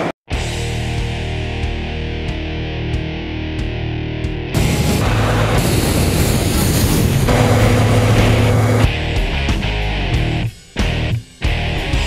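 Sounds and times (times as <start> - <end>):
fire roaring: 4.6 - 9.0.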